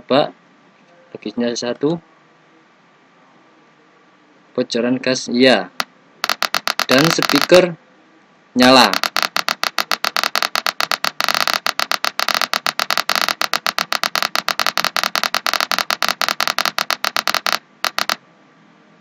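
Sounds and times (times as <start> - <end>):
stuttering buzzer alarm tone: 6.2 - 7.6, 8.9 - 18.2.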